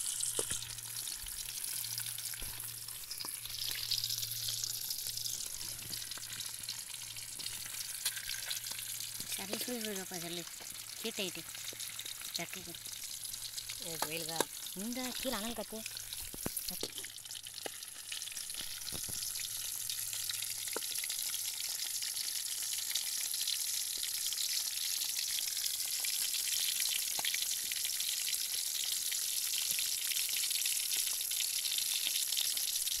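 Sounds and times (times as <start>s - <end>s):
fish sizzling in hot oil: 0.0s - 33.0s.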